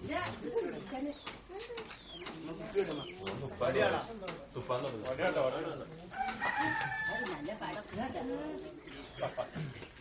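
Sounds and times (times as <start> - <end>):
onlookers talking: 0.0 - 10.0
rooster crowing: 6.1 - 7.5.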